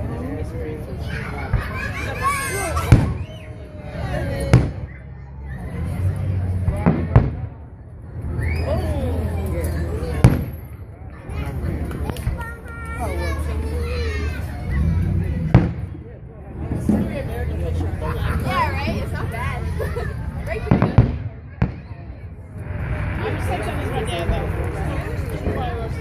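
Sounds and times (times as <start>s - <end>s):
crowd talking: 0.0s - 26.0s.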